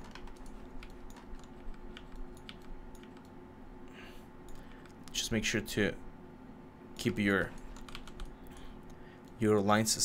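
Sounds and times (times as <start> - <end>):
keyboard and mouse clicking: 0.0 - 3.3, 7.0 - 9.4
faint steady hum: 0.0 - 10.0.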